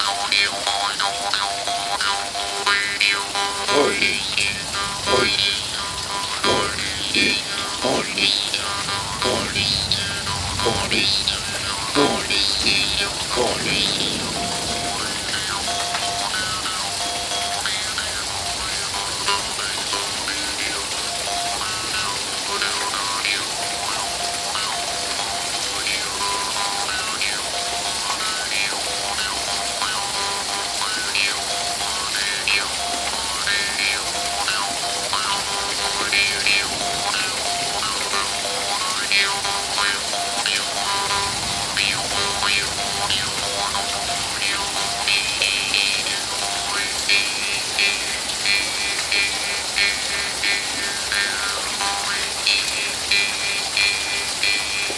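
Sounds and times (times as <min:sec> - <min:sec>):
steady rain: 0:00.0 - 0:54.9.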